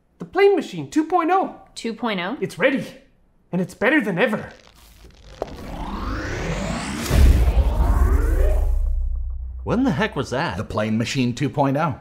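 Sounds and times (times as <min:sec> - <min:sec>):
rising whoosh: 0:04.6 - 0:10.6
deep boom with low rumble: 0:05.6 - 0:10.7.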